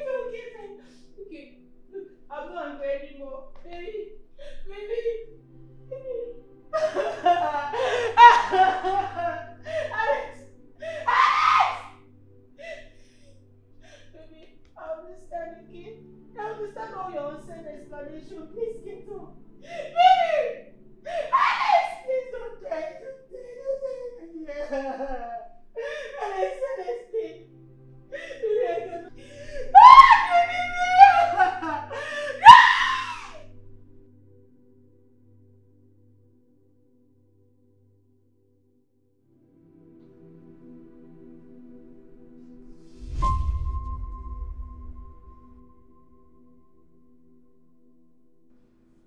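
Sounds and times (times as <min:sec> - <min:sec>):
low music drone: 0:00.0 - 0:32.4, 0:39.3 - 0:49.0
woman sobbing: 0:03.7 - 0:12.0, 0:12.6 - 0:14.5, 0:15.3 - 0:27.5, 0:28.1 - 0:33.4
woman wailing: 0:06.8 - 0:11.9, 0:19.8 - 0:27.3, 0:28.2 - 0:33.4.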